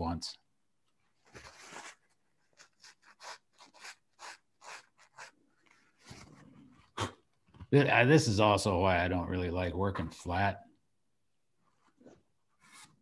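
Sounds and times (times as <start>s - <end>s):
cloth rubbing on paper: 1.3s - 6.7s, 11.7s - 13.0s.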